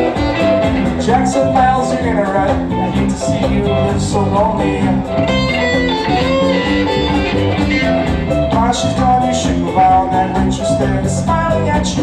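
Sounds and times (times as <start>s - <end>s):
bass: 0.0s - 12.0s
drums: 0.0s - 12.0s
electric guitar lines: 4.6s - 8.6s.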